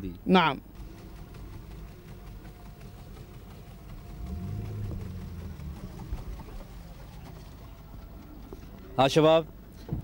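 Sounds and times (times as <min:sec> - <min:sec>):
low droning hum: 0:00.7 - 0:09.0
outdoor rumble: 0:00.7 - 0:09.2.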